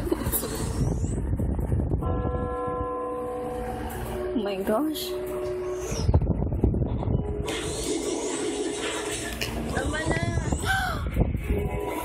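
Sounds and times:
low rumble: 0:00.0 - 0:12.0
steady pitched tone: 0:00.1 - 0:10.7.

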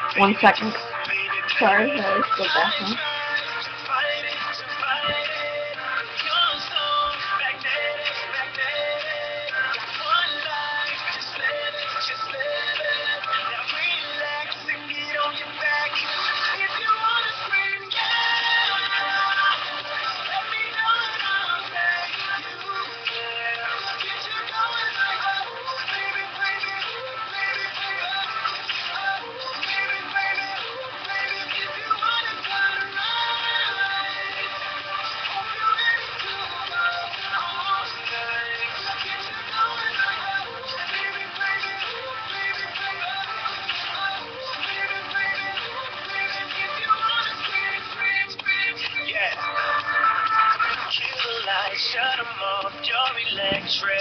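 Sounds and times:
song playing on a radio: 0:00.0 - 0:54.0.

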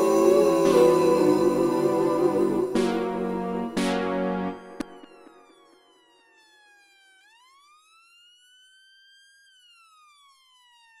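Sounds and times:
faint siren wailing: 0:00.0 - 0:11.0.

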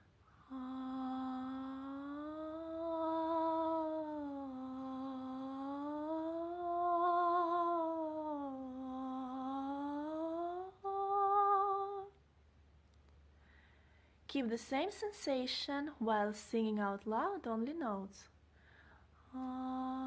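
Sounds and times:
woman humming: 0:00.0 - 0:12.2, 0:19.3 - 0:20.0.

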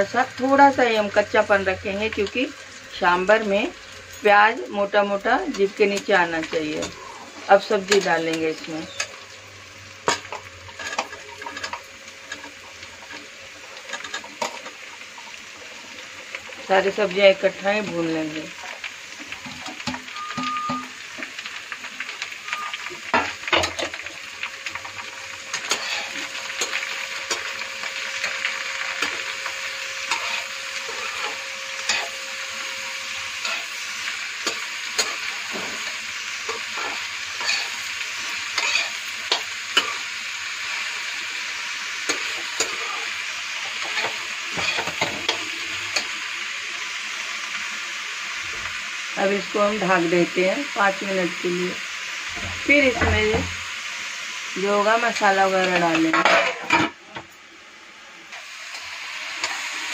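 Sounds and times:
vegetables sizzling in hot oil: 0:00.0 - 0:59.9
spatula scraping a pan: 0:10.0 - 0:14.8, 0:24.8 - 0:40.1, 0:42.0 - 0:46.2, 0:55.7 - 0:57.0.

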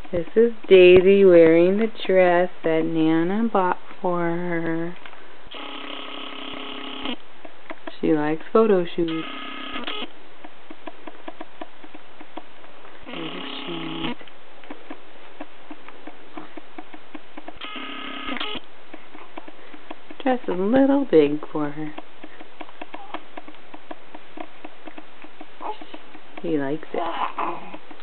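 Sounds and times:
camcorder zoom motor whining: 0:05.5 - 0:07.2, 0:09.1 - 0:10.1, 0:17.6 - 0:18.6
baby cooing: 0:25.6 - 0:26.0, 0:27.0 - 0:27.9.

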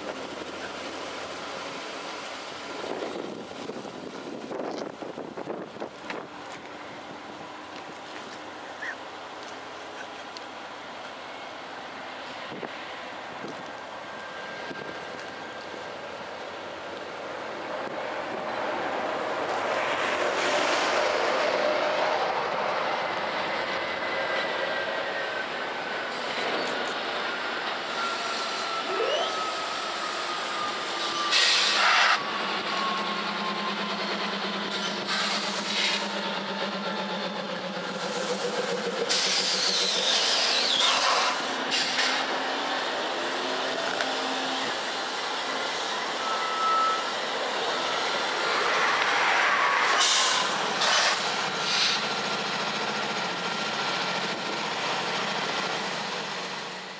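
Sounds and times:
diesel locomotive engines humming: 0:00.0 - 0:56.9
thin squealing tone: 0:27.8 - 0:32.0, 0:46.0 - 0:47.2.

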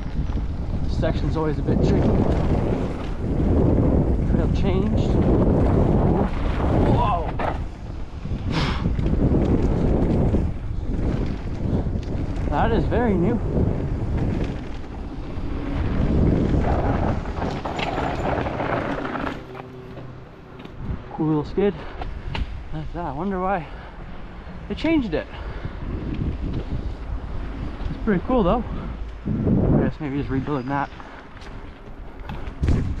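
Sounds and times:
bike rattling over bumps: 0:00.0 - 0:33.0
bike tyres on dirt: 0:00.0 - 0:33.0
wind buffeting microphone: 0:00.0 - 0:33.0.

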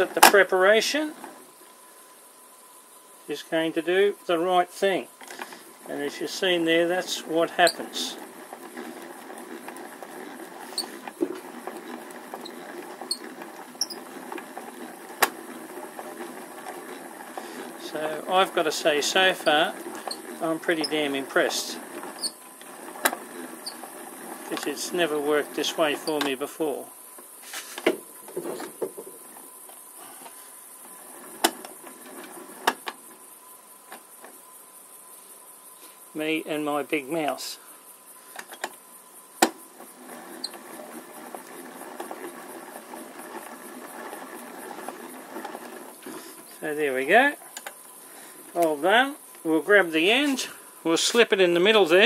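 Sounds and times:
yarn winder whirring: 0:00.0 - 0:34.6, 0:36.1 - 0:52.0
short high squeaks: 0:06.8 - 0:26.5, 0:39.8 - 0:46.9.

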